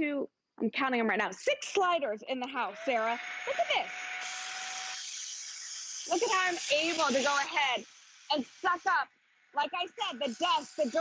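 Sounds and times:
vacuum air hiss: 4.2 - 8.9, 10.0 - 11.0.

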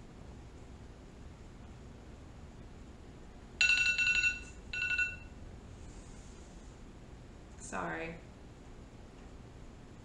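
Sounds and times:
electronic phone ringtone: 3.6 - 5.4.

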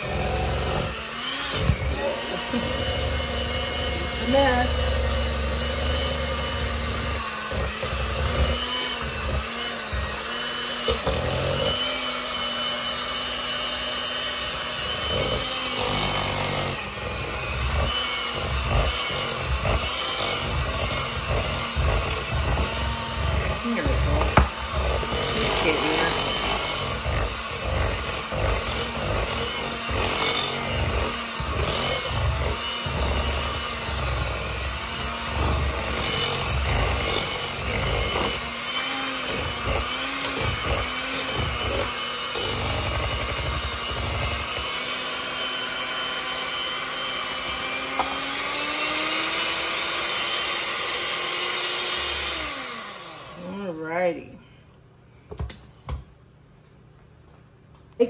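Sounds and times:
electric hand mixer whipping mixture: 0.0 - 54.2.

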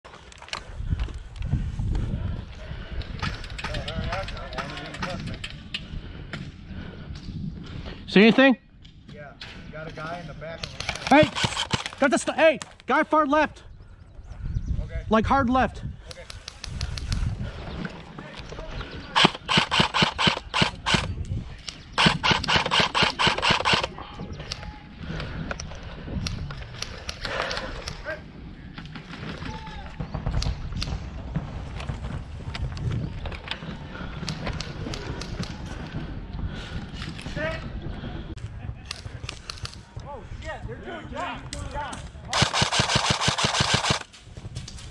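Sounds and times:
faint scattered shots: 10.6 - 12.2, 19.2 - 21.2, 22.0 - 23.9, 42.3 - 44.1
airsoft rifle full auto bursts: 11.1 - 12.0, 19.2 - 21.1, 22.0 - 23.9, 42.3 - 44.1.

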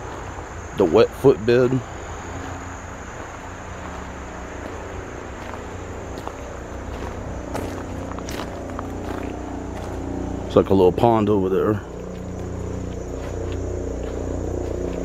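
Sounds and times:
crickets droning: 0.0 - 15.0
low steady background rumble: 0.0 - 15.0
footstep clicks: 2.3 - 10.6, 11.9 - 15.0.

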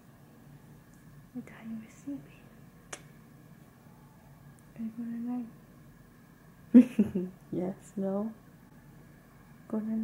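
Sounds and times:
person whispering: 1.4 - 2.4.

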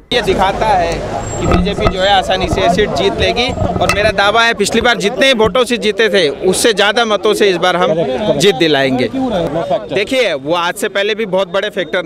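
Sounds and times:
vehicle engines running: 0.0 - 6.9
people talking: 0.0 - 12.0.

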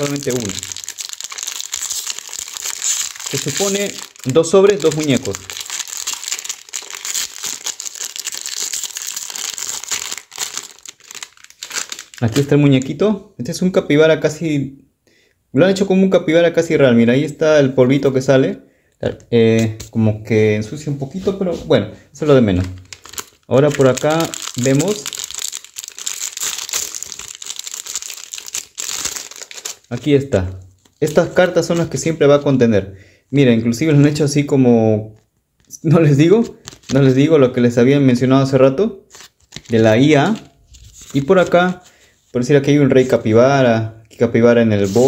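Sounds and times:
foil wrapper crinkling: 0.0 - 12.8, 22.5 - 30.1, 39.1 - 42.0
wrapper tearing: 0.0 - 12.9, 22.5 - 30.1, 30.8 - 32.0, 36.6 - 37.2, 39.1 - 41.6.

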